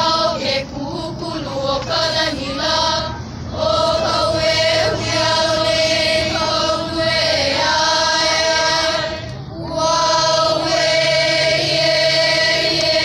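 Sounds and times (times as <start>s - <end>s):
children singing in unison: 0.0s - 13.0s.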